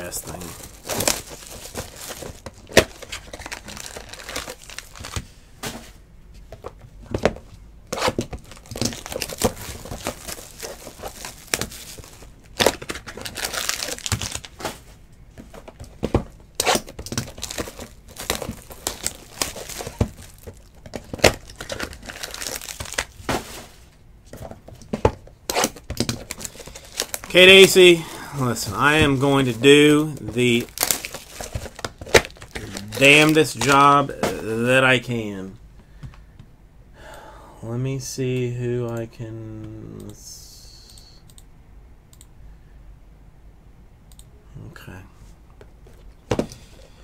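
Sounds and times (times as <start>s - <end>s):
plastic wrap crinkling and tearing: 0.0s - 5.2s, 7.9s - 14.6s, 16.6s - 23.2s, 25.6s - 34.1s.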